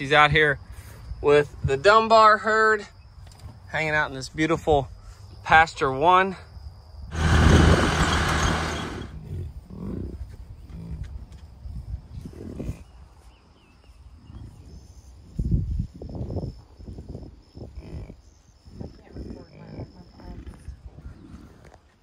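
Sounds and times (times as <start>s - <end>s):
vehicle engine hum: 7.1s - 9.2s
wind rushing: 7.1s - 9.2s.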